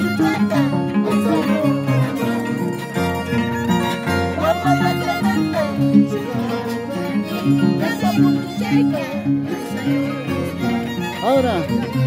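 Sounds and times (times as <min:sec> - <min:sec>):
bowed violin melody: 0:00.0 - 0:12.0
plucked harp: 0:00.0 - 0:12.0.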